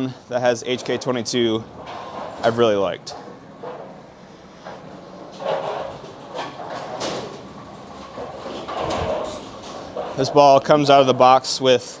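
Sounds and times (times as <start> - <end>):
bowling machinery rumbling and clunking: 0.4 - 11.6.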